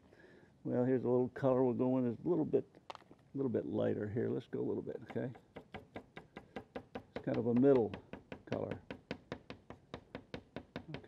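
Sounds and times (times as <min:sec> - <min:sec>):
pastel stick tapping on paper: 0:05.1 - 0:11.0.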